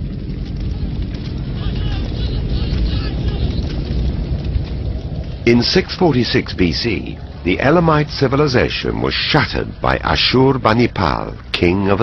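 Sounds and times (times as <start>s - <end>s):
deep steady rumble: 0.0s - 12.0s
distant voices crying out: 0.6s - 3.9s.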